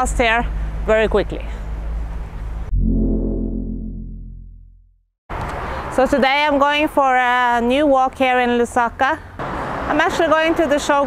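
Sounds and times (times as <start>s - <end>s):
outdoor background noise: 0.0s - 2.7s, 5.3s - 11.0s
deep synthesized booming chord: 2.7s - 5.0s.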